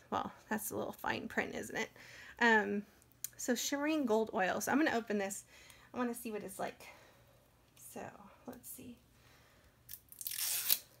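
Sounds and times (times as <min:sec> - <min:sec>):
packaging seal tearing: 0:09.9 - 0:11.0.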